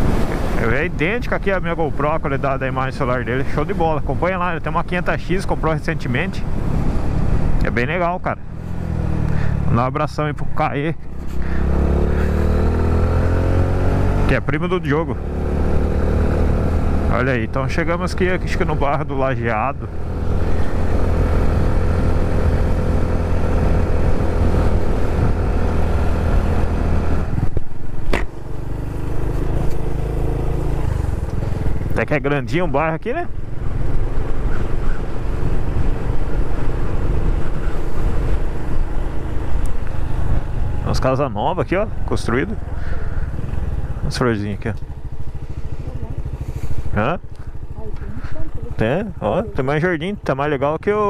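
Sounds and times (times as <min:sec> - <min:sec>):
motorcycle engine running: 0:06.4 - 0:51.0.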